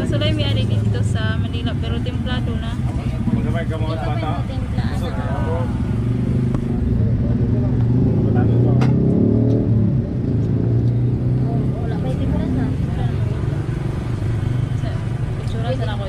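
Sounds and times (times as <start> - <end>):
vehicle engine running: 0.0 - 16.0.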